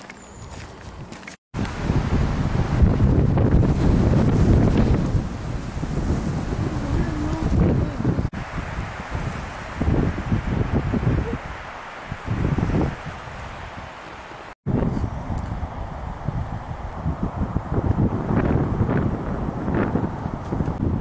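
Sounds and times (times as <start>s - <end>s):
wind buffeting microphone: 0.4s - 14.0s, 14.7s - 21.0s.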